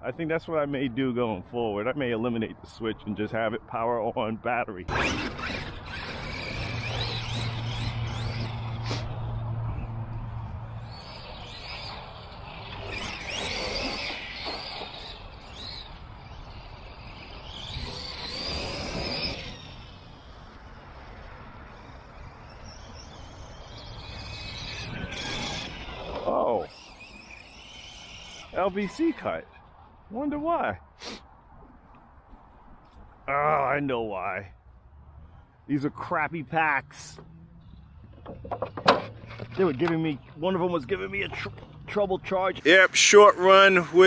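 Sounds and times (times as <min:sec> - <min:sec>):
electric toy truck motor whine: 0:04.9 - 0:09.4, 0:10.4 - 0:29.7, 0:42.8 - 0:44.0.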